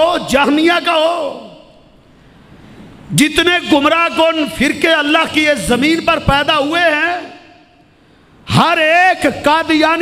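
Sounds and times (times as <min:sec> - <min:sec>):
man's voice through microphone: 0:00.0 - 0:02.0, 0:03.0 - 0:10.0.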